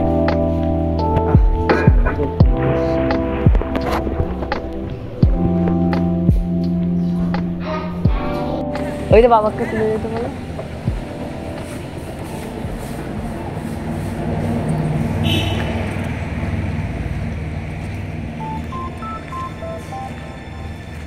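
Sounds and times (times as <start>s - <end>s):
short electronic beeps tune: 18.4s - 20.7s.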